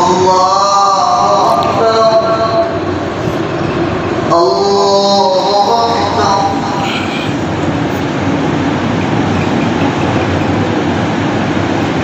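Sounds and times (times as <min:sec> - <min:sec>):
man chanting prayer: 0:00.0 - 0:03.0, 0:04.2 - 0:07.6
steady rushing noise: 0:00.0 - 0:12.0.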